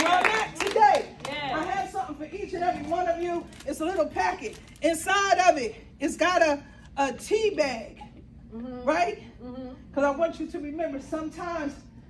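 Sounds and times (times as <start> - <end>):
small audience clapping: 0.0 - 1.9.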